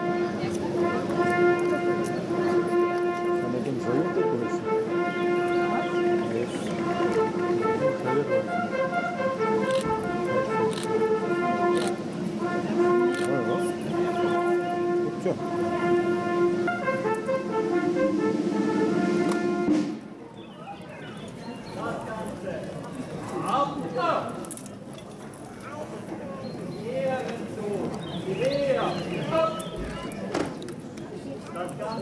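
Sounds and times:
military band music: 0.0s - 20.2s
crowd murmur: 0.0s - 32.0s.

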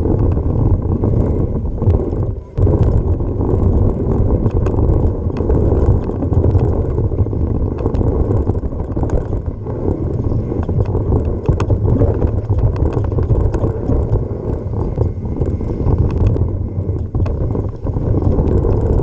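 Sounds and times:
bike tyres on gravel: 0.0s - 19.0s
clicks and knocks from bike: 0.0s - 19.0s
wind rumbling on microphone: 0.0s - 19.0s.

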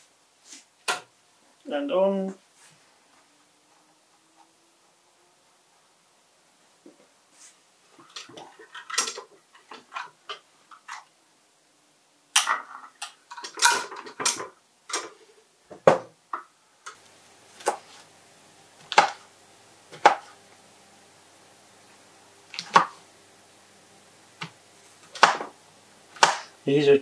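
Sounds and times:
faint steady hum: 0.0s - 27.0s
pots and pans clattering: 8.0s - 11.1s, 12.4s - 15.2s.

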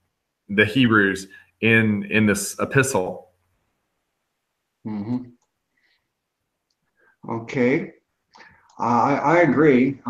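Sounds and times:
man saying mm-hmm: 4.9s - 5.3s
faint clicks: 6.6s - 7.0s.

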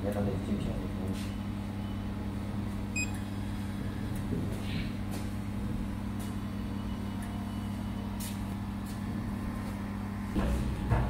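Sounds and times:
low electrical hum of machine: 0.0s - 11.0s.

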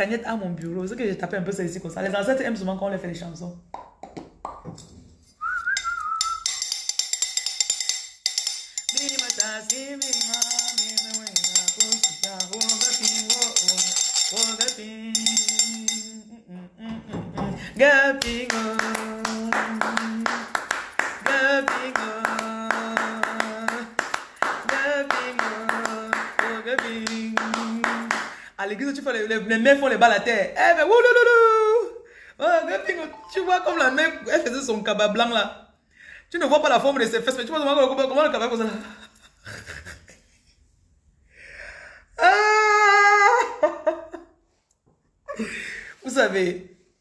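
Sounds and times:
hand tapping a rhythm: 5.8s - 16.2s, 18.2s - 28.4s
woman singing: 8.9s - 28.8s.

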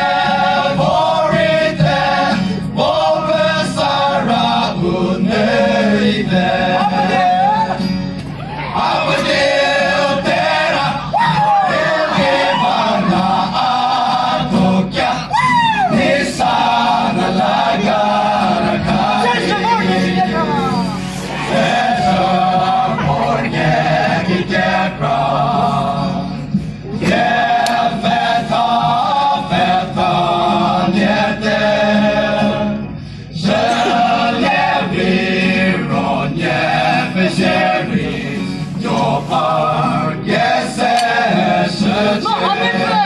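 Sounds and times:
group of voices singing: 0.0s - 43.0s.

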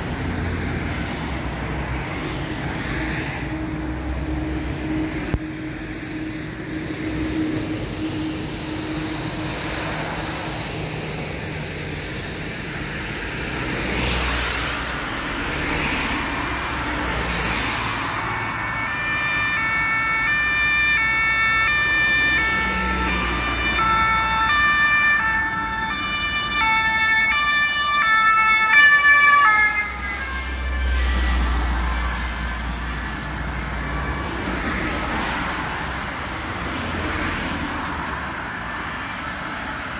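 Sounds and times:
road traffic noise: 0.0s - 39.9s
two-tone emergency siren: 3.4s - 11.6s, 15.2s - 38.6s.

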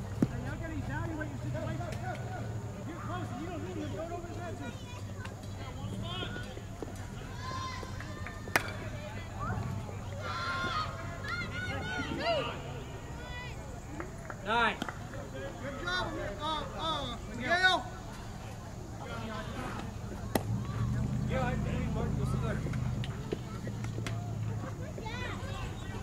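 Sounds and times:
distant voices calling: 0.0s - 26.0s
baseball knocks: 0.1s - 0.5s, 7.8s - 8.9s, 19.7s - 20.8s.

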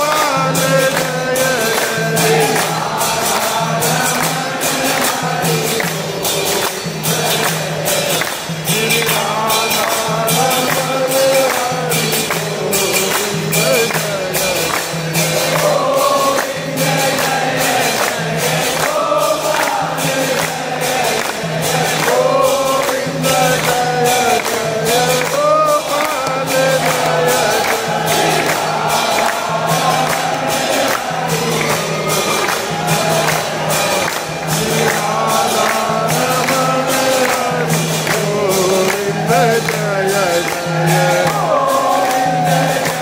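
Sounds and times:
crowd singing a hymn: 0.0s - 43.0s
rhythmic hand-clapping: 0.0s - 43.0s.

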